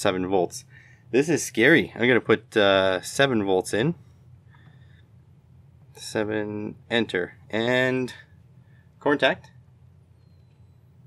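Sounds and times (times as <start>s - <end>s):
quiet room hum: 0.0s - 11.0s.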